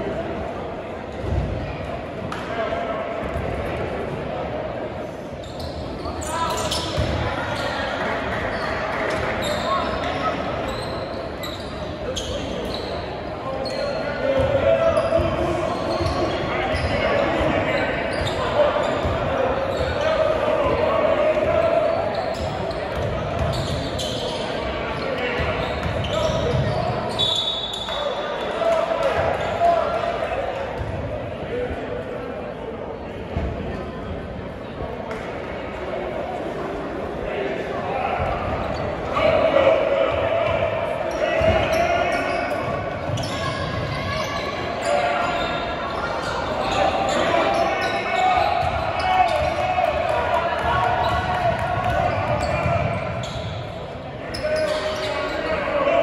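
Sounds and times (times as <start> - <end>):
crowd chatter echoing: 0.0 - 56.0
sneaker squeaks: 5.4 - 30.1, 30.8 - 31.0, 38.2 - 39.4, 40.0 - 55.8.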